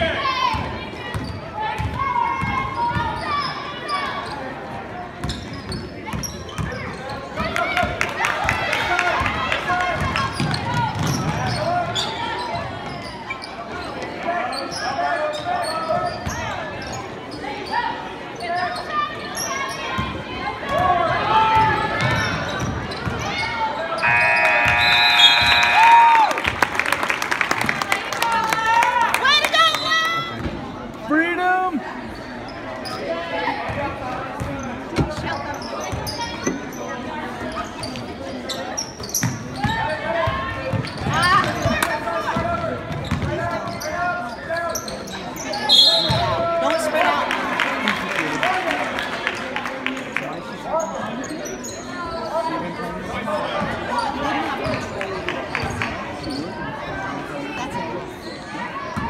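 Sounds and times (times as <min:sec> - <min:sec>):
sneakers squeaking: 0:00.5 - 0:07.4, 0:10.0 - 0:20.2, 0:21.6 - 0:26.1, 0:34.4 - 0:46.4, 0:50.8 - 0:52.6, 0:55.5 - 0:57.0, 0:58.0 - 0:59.0
referee's whistle: 0:24.0 - 0:26.2, 0:45.5 - 0:46.4
indistinct shouts: 0:24.0 - 0:26.4.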